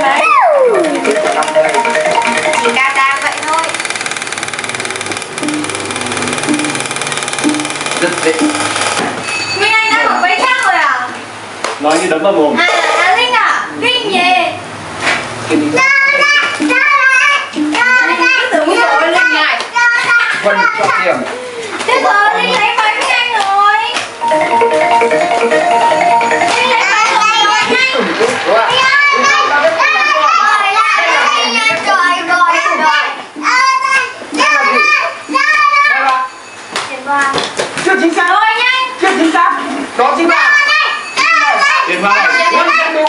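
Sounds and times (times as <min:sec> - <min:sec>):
children talking: 0:00.0 - 0:03.9, 0:12.6 - 0:14.7, 0:15.6 - 0:25.1, 0:25.7 - 0:37.6, 0:38.3 - 0:43.0.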